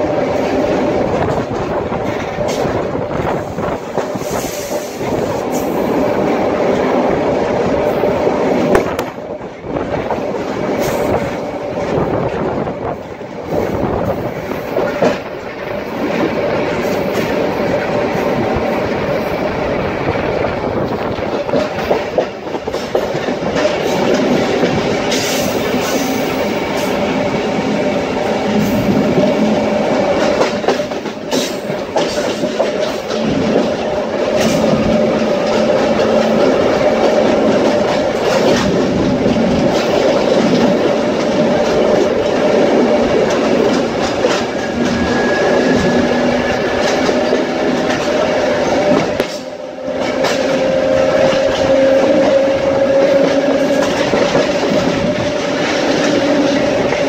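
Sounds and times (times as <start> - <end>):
train wheels rumbling on rail: 0.0 - 57.0.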